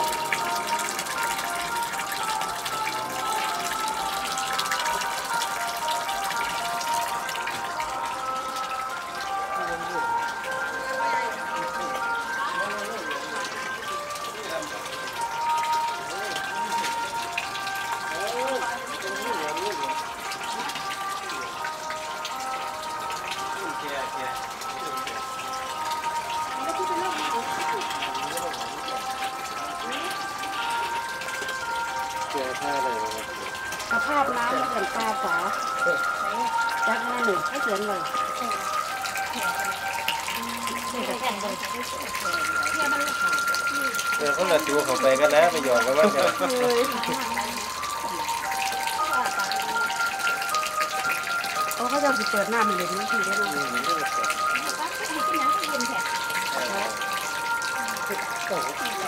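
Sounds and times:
background music with held notes: 0.0 - 59.0
water dripping: 0.0 - 59.0
water splashing: 0.0 - 59.0.

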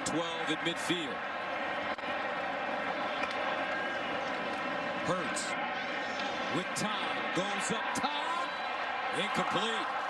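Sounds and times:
stadium crowd roaring: 0.0 - 10.0.

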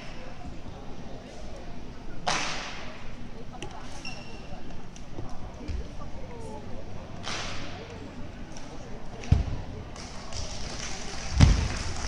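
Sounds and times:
low hall murmur: 0.0 - 12.0.

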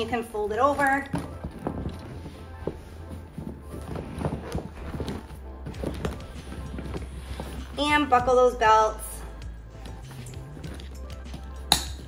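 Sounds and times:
inflatable plastic rustling: 0.0 - 8.2
background music: 0.0 - 12.0.

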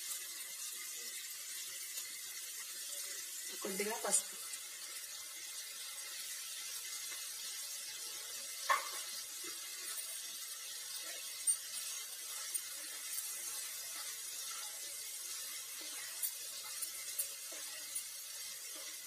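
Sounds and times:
food sizzling in oil: 0.0 - 19.0.

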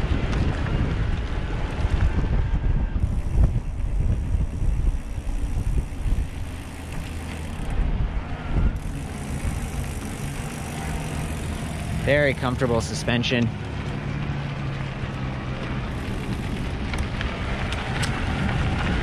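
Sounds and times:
wind noise on microphone: 0.0 - 12.2, 15.2 - 19.0
bike tyres rolling on dirt trail: 0.0 - 19.0.

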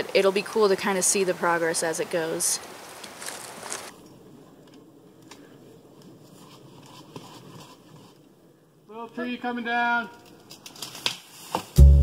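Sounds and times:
rustling noise: 2.8 - 4.0, 4.6 - 8.3, 10.2 - 11.8.

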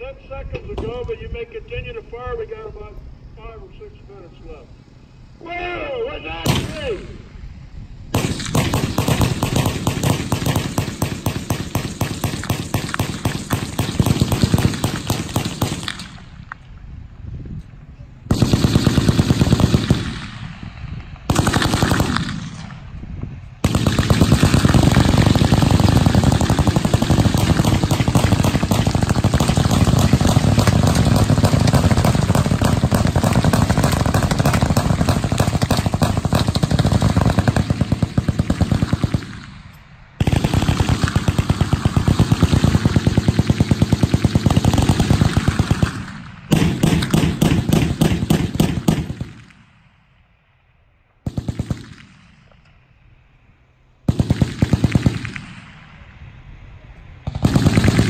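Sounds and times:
machine guns firing automatic: 8.1 - 16.2, 18.3 - 20.4, 21.3 - 22.7, 23.6 - 39.5, 40.2 - 49.6, 51.3 - 52.3, 54.1 - 55.6, 57.2 - 58.0.

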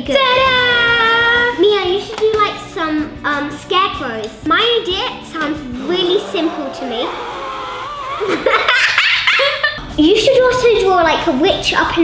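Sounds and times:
girls laughing and giggling: 5.8 - 9.8.

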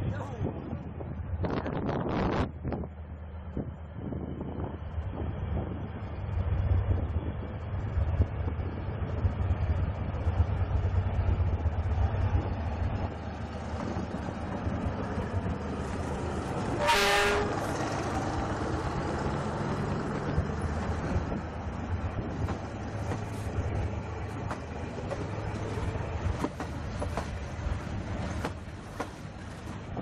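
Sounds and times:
diesel locomotive engine drone: 0.0 - 30.0
train coaches rolling past: 2.4 - 30.0
train horn: 16.7 - 17.7.

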